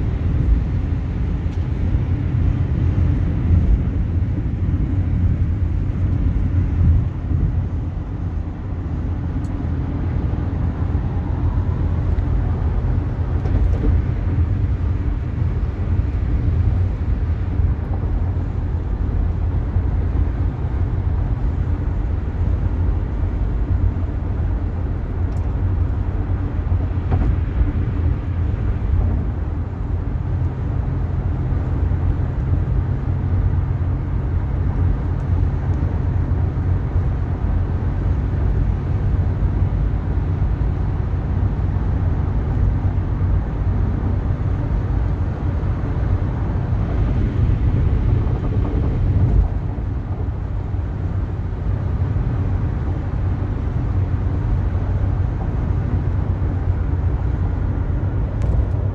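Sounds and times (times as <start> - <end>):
car road and engine rumble: 0.0 - 58.9.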